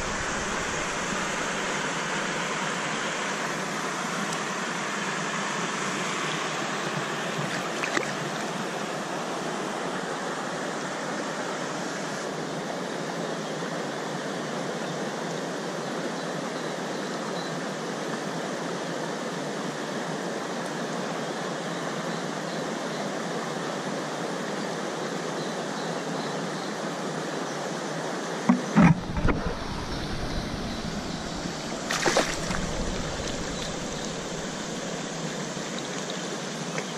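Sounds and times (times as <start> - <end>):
rocky stream rushing: 0.0 - 12.6, 28.5 - 36.9
loud deep thumps: 28.5 - 35.0.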